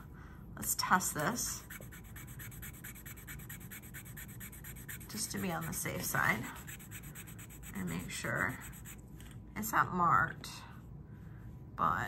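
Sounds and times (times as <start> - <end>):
jewelry scratching on stone: 1.6 - 9.0.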